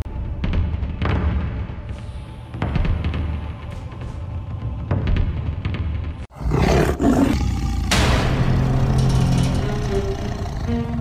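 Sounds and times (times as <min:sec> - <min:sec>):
dramatic music: 0:00.1 - 0:11.0
tiger roar: 0:06.3 - 0:11.0.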